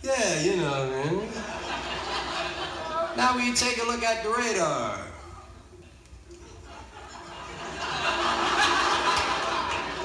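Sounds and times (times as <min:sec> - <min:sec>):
audience laughter on a record: 0:01.3 - 0:03.1, 0:06.3 - 0:10.0.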